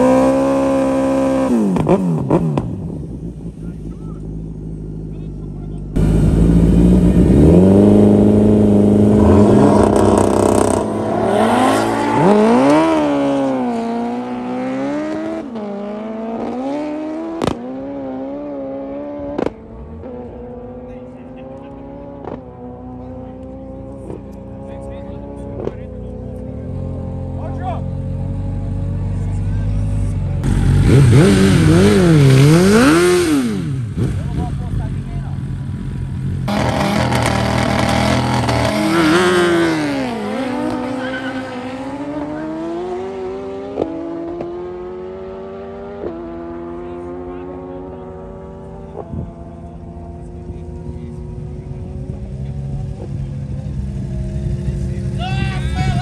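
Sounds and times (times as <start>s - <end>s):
motorcycle engine accelerating: 0.0s - 56.0s
sport bike revving in burnout: 5.9s - 19.6s, 30.4s - 55.2s.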